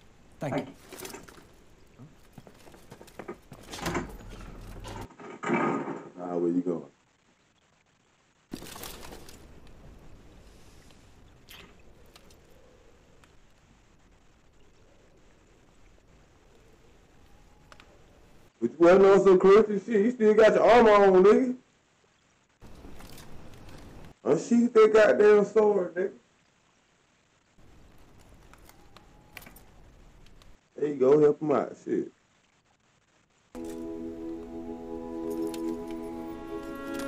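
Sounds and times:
clicks: 17.2s - 18.0s.

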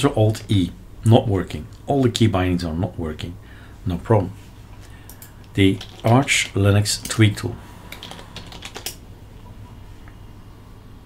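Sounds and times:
typing on computer keyboard: 5.1s - 6.6s, 7.9s - 9.0s.

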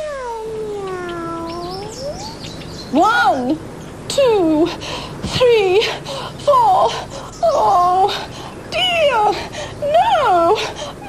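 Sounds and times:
cat meowing: 0.0s - 2.4s.

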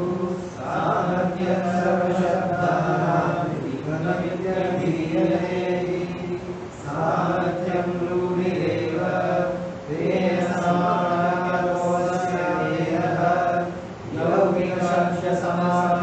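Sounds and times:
person chanting verse: 0.0s - 16.0s.

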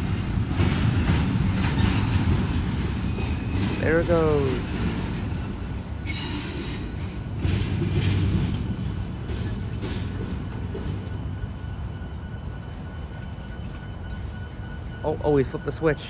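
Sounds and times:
train wheels rumbling on rail: 0.0s - 16.0s
high-pitched wheel squeal: 6.0s - 7.7s.

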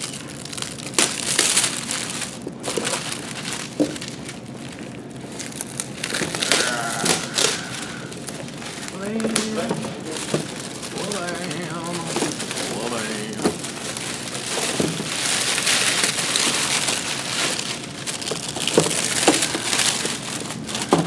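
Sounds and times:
plastic shrink-wrap crinkling: 0.0s - 21.0s.

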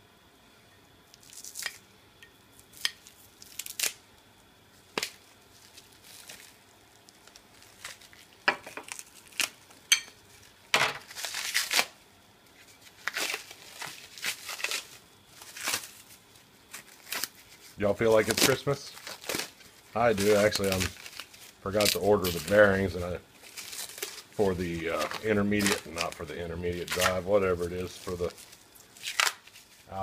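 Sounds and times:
cellophane wrap crinkling: 1.1s - 1.8s, 2.6s - 30.0s.

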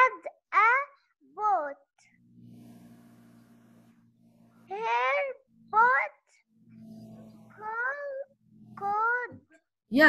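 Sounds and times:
girl reading aloud: 0.0s - 2.0s, 4.7s - 6.4s, 7.5s - 9.4s.

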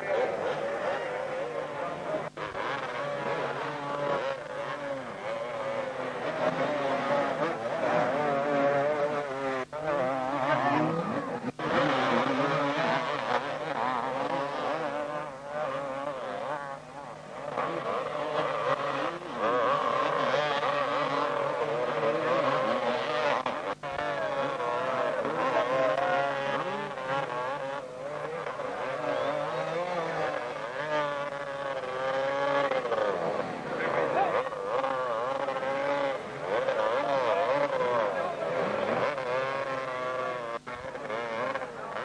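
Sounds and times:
motocross engines revving: 0.0s - 42.0s.

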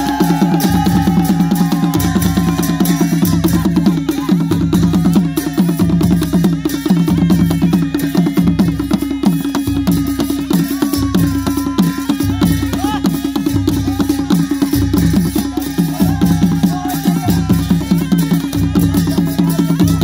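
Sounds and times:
fast hand-drum strokes: 0.0s - 20.0s.

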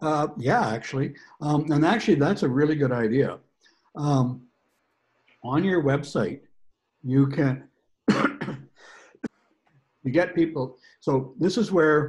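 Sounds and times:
man coughing: 8.1s - 8.6s
breath: 8.7s - 9.6s, 10.8s - 11.0s.

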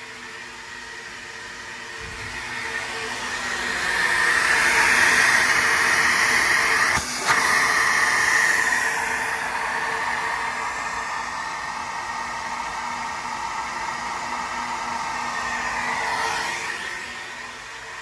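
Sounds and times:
vacuum motors rushing air: 0.0s - 18.0s.

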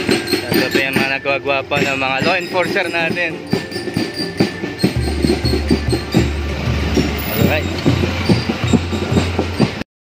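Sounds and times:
parade band drumbeats: 0.0s - 9.8s
truck engine hum: 3.6s - 9.8s.

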